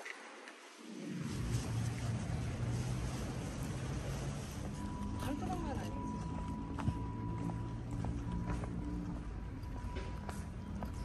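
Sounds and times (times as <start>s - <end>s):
footsteps on stone paving: 1.4s - 11.0s.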